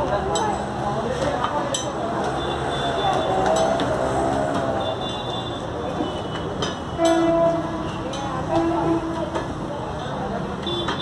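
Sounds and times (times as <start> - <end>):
traffic: 0.0 - 11.0.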